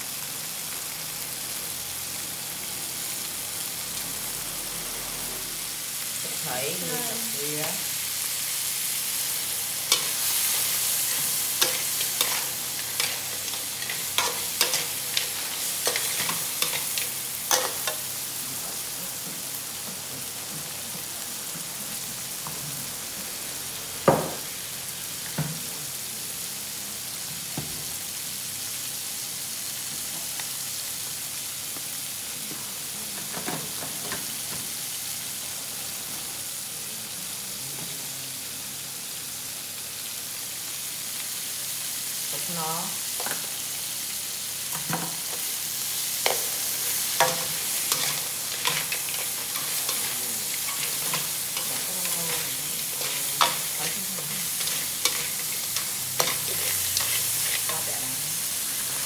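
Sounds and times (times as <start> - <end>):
crabs sizzling in hot oil: 0.0 - 59.0
metal spatula scraping a pan: 9.9 - 18.0, 46.2 - 57.9
loud knock on a pan: 24.1 - 24.4.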